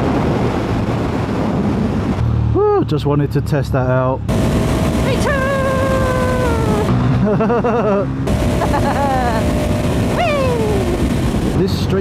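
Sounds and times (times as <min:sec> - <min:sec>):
wind rushing: 0:00.0 - 0:02.6, 0:04.3 - 0:07.2, 0:08.2 - 0:11.8
motorcycle engine: 0:04.3 - 0:11.9
person crying out: 0:10.2 - 0:11.0.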